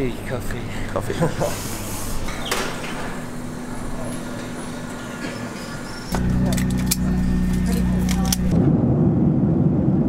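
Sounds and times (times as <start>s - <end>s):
steady hum: 0.1s - 10.0s
airliner cabin drone: 0.7s - 10.0s.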